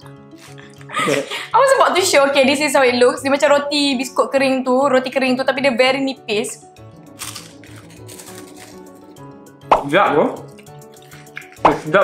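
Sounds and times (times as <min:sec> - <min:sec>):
crunching of crisp biscuits: 0:00.3 - 0:00.9, 0:07.0 - 0:09.2
background music with beat: 0:06.8 - 0:12.0.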